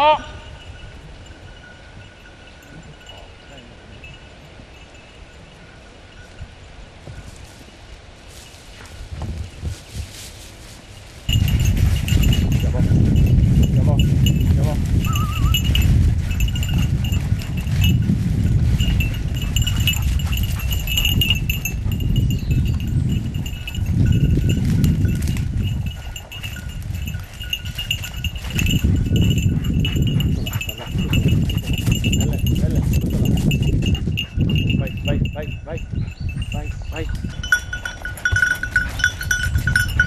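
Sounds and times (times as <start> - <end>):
dog collar bell jingling: 0.1 - 6.5, 10.9 - 40.0.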